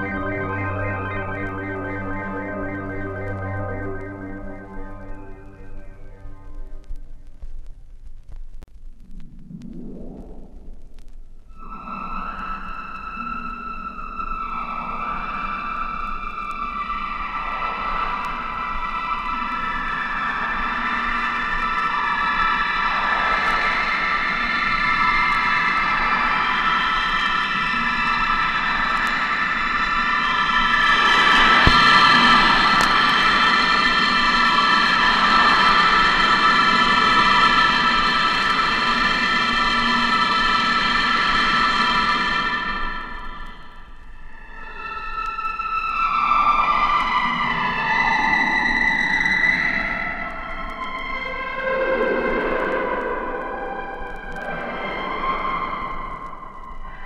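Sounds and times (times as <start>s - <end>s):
synth chord with filter sweeps: 0.0s - 6.8s.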